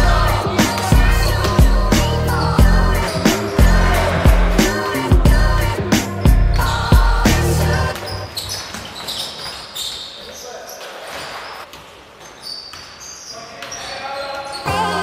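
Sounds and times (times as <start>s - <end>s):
players' voices: 0.0s - 8.2s
background music: 0.0s - 8.3s, 14.6s - 15.0s.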